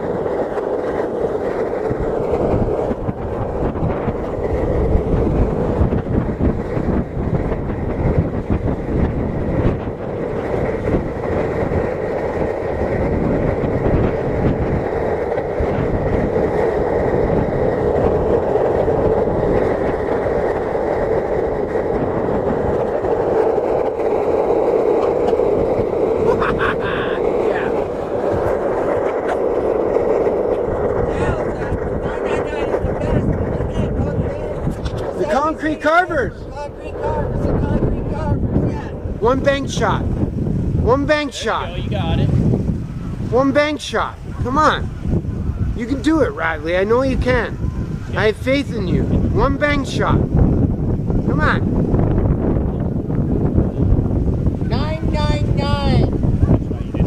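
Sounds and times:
skateboard wheels rumbling on asphalt: 0.0s - 57.0s.

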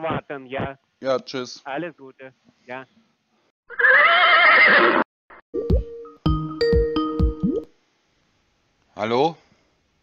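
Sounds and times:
horse whinny: 3.7s - 5.0s.

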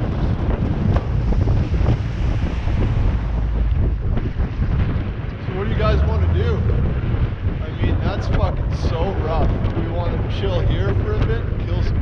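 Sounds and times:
water rushing past hull: 0.0s - 10.4s
wind buffeting microphone: 0.0s - 12.0s.

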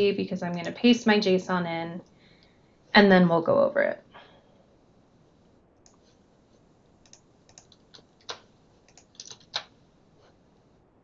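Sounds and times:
keyboard and mouse clicks: 7.0s - 9.8s.

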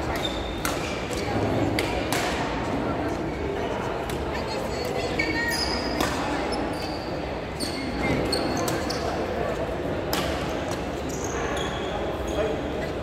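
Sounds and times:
racket hitting shuttlecock: 0.0s - 2.6s
murmur of voices: 0.0s - 13.0s
shoes squeaking on court: 5.0s - 9.6s, 10.4s - 13.0s.

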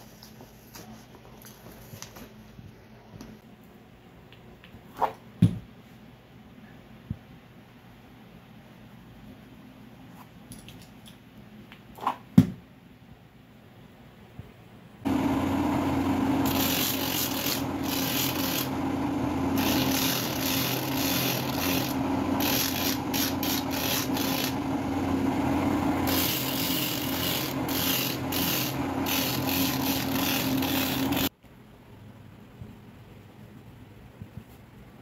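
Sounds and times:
sanding machine motor hum: 15.1s - 31.3s
sole rasping on abrasive wheel: 16.2s - 25.2s, 26.0s - 31.3s.

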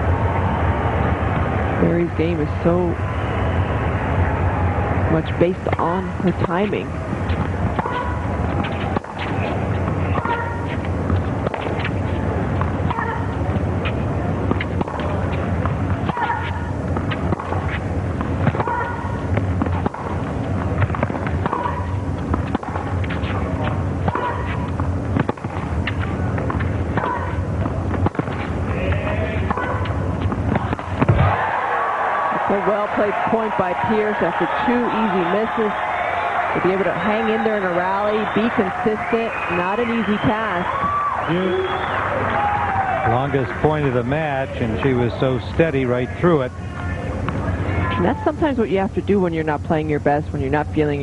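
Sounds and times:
low hum: 0.0s - 51.0s
racket striking tennis ball: 5.7s - 31.4s
crowd applause: 31.1s - 45.1s.

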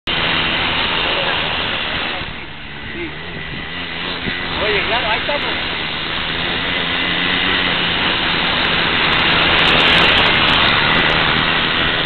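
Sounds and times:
small engine running: 0.1s - 12.0s.

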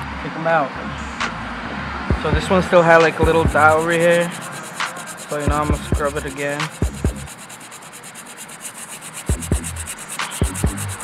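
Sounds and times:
brush scrubbing suede: 2.6s - 11.0s.

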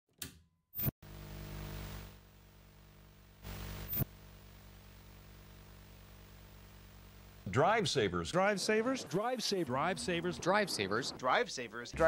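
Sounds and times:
television electrical buzz with hiss: 0.8s - 7.8s
bursts of static noise: 0.8s - 12.0s.

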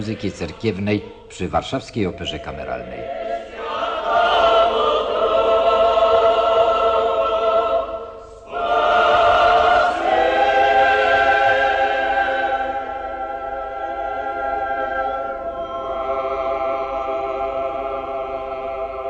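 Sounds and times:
mixed choir singing unaccompanied: 0.0s - 19.0s.

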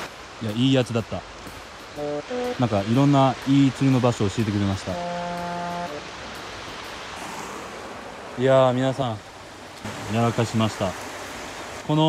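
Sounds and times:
creek flowing: 0.0s - 12.0s
steady pitched tone: 4.9s - 6.1s.

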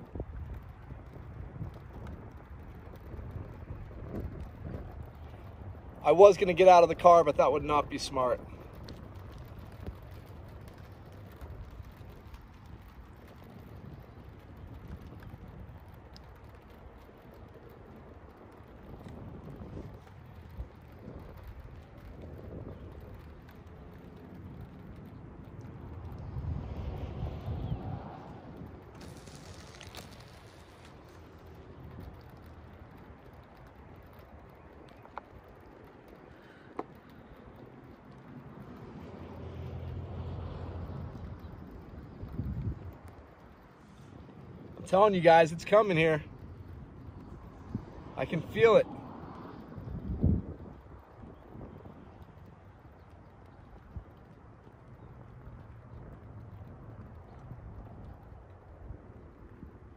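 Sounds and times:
wind rumbling on microphone: 0.0s - 59.9s
faint clicks: 8.4s - 59.8s.

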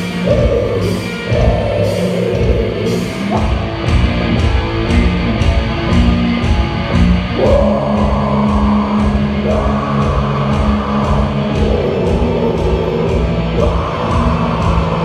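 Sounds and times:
harsh vocals: 0.0s - 4.1s, 7.2s - 15.0s
distorted guitars: 0.0s - 15.0s
drums: 0.0s - 15.0s.

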